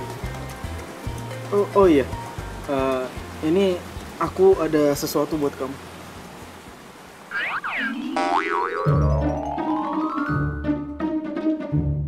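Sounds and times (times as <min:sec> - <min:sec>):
springy boing sound effects: 0:07.3 - 0:10.6.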